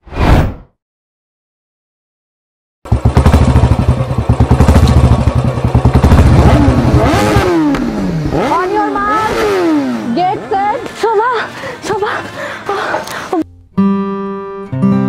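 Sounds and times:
motorcycle engines revving: 2.9s - 12.3s.

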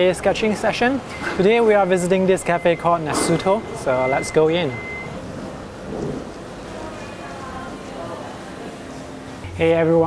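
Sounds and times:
low rumbling background noise: 0.0s - 10.0s.

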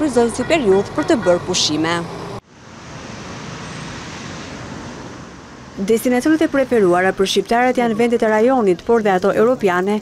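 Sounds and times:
city road traffic: 0.0s - 10.0s.

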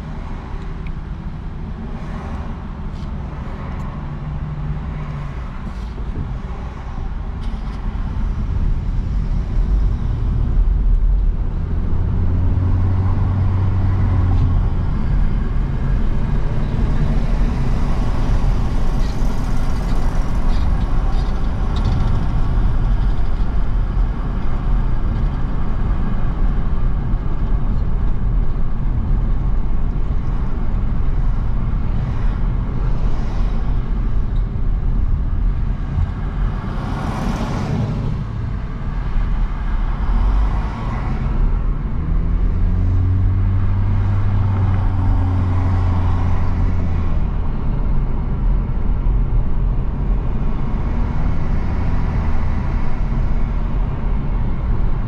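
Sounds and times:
low engine hum: 0.0s - 55.0s
passing traffic: 0.0s - 55.0s
tyre and engine rumble: 0.0s - 55.0s.

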